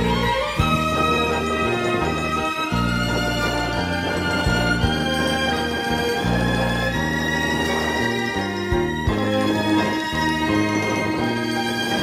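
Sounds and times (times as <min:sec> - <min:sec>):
instrumental music with held chords: 0:00.0 - 0:12.0.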